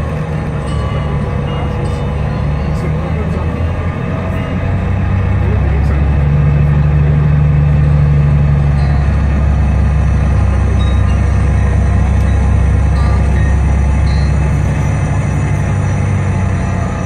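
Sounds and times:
bus engine droning: 0.0 - 17.0
eerie music: 0.0 - 17.0
road noise: 0.0 - 17.0.

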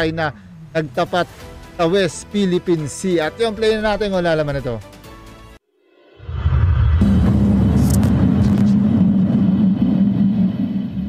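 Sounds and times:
deep rumbling drone: 6.1 - 11.0.

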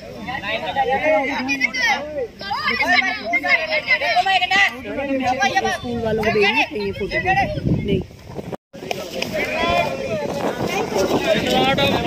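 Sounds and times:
boys shouting and calling: 0.0 - 8.1, 9.0 - 12.0.

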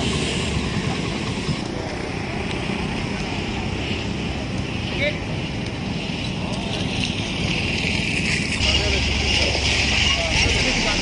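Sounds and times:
indistinct voices: 0.0 - 11.0
vehicle engines: 0.0 - 11.0.

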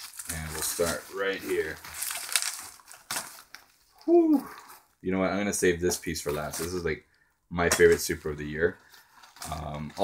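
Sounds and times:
packing material crinkling: 0.0 - 4.9, 7.8 - 10.0.

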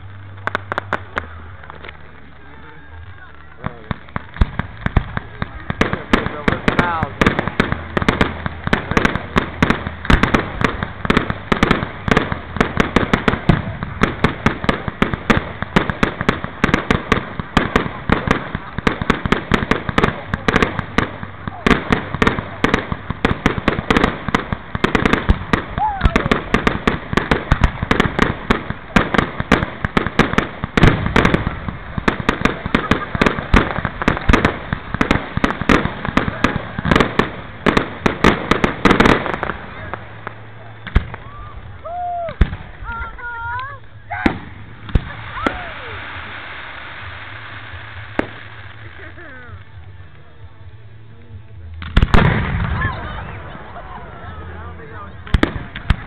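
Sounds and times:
fireworks cracks and bangs: 0.0 - 56.0.

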